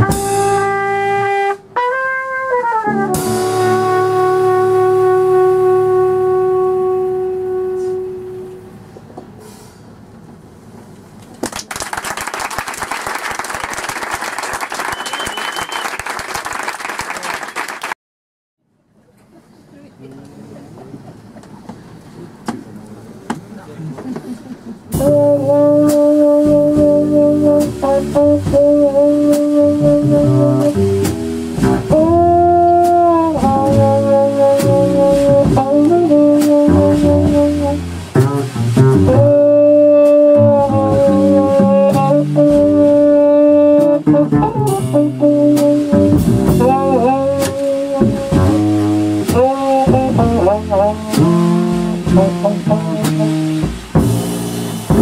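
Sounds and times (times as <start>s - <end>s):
drums: 0.0s - 8.0s, 23.3s - 55.0s
muted jazz trumpet: 0.0s - 8.8s, 24.9s - 55.0s
walking double bass: 0.0s - 9.4s, 23.2s - 55.0s.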